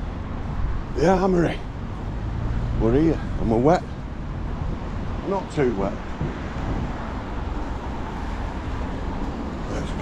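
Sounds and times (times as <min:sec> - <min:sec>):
traffic on wet road: 0:00.0 - 0:10.0.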